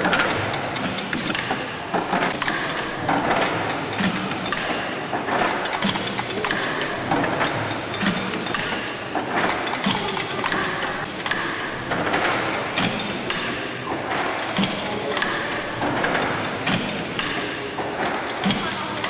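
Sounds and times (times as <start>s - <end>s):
steam engine rhythmic clatter: 0.0s - 19.0s.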